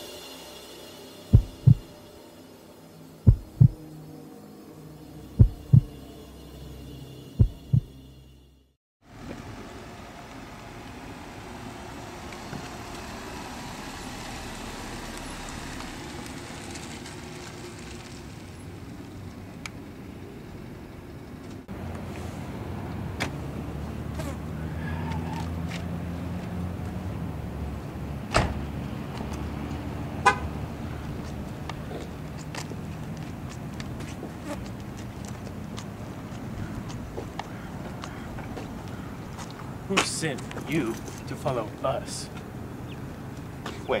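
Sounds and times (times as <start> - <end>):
outdoor noise: 0.0 - 44.0
heartbeat thumps: 1.3 - 1.9, 3.3 - 3.8, 5.4 - 6.0, 7.4 - 7.9
car driving slowly: 9.0 - 44.0.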